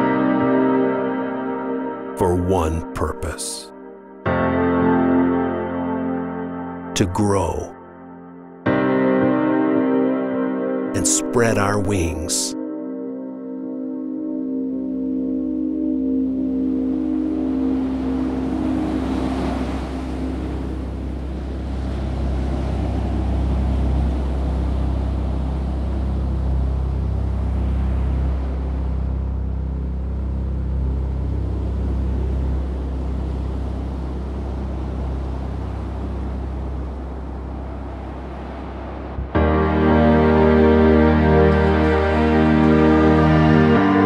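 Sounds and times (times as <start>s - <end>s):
boat engine rumble: 17.4s - 44.0s.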